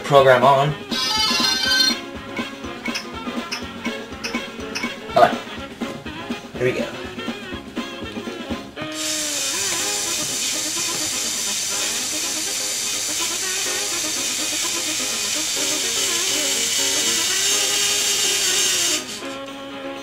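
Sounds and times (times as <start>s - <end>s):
electric motors whining: 0.9s - 4.0s, 8.8s - 19.6s.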